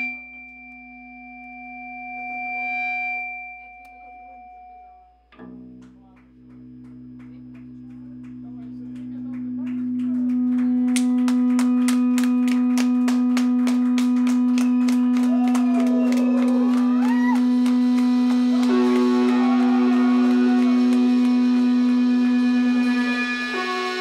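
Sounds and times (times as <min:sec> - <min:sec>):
droning electric guitars and bass: 0:00.0 - 0:24.0.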